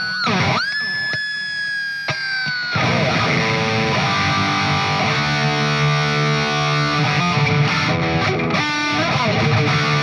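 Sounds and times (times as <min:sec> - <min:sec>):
distorted electric guitar: 0:00.0 - 0:10.0.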